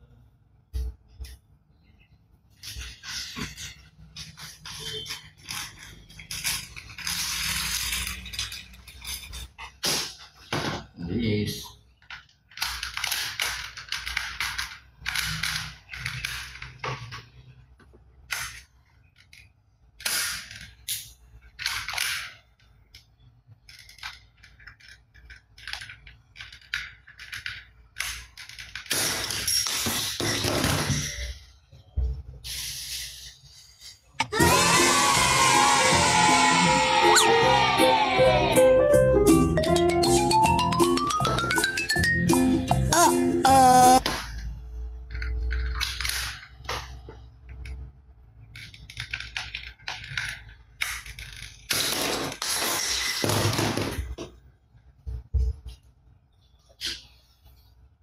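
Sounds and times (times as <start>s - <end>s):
plastic rattling: 2.5s - 9.8s
music: 34.4s - 43.4s.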